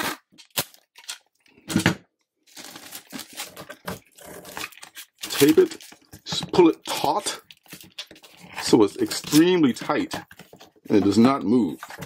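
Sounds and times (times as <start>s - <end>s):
packing tape screeching: 0.0s - 1.1s, 2.6s - 5.9s
tape crackling on cardboard: 2.5s - 12.0s.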